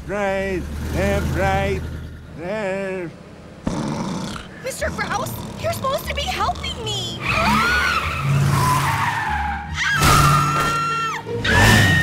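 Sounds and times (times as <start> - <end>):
car engine running: 0.0 - 8.3
tire screech: 4.3 - 12.0
background music: 4.9 - 12.0.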